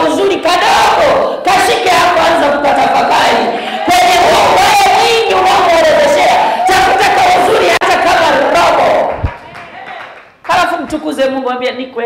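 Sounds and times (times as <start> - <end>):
woman shouting into microphone: 0.0 - 9.3
crowd of voices: 2.0 - 10.0.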